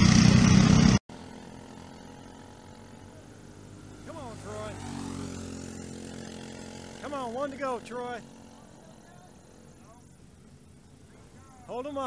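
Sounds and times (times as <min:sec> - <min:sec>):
kart engines racing drone: 0:00.0 - 0:12.0.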